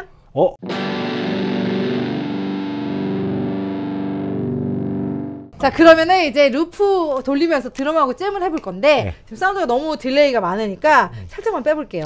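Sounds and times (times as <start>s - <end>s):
distorted electric guitar chord: 0.6s - 5.5s.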